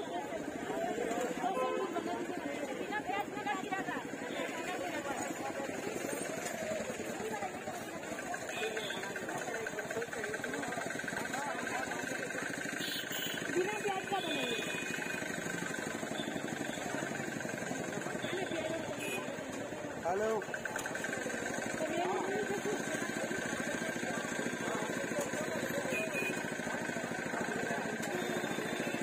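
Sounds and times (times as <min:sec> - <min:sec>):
voices talking: 0:00.0 - 0:29.0.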